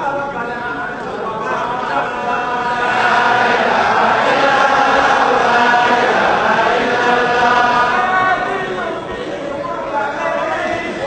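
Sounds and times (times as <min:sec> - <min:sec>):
congregation chanting: 0:00.0 - 0:11.0.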